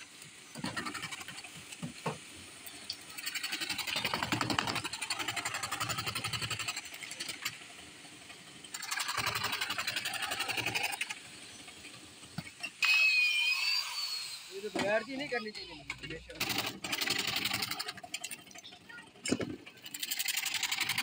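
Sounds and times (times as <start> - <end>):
electric jigsaw sawing wood: 8.8 - 11.2, 16.4 - 18.0.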